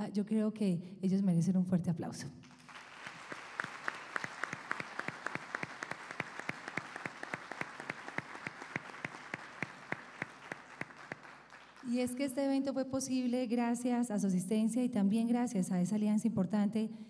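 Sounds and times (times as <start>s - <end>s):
small audience applauding: 2.6s - 12.0s.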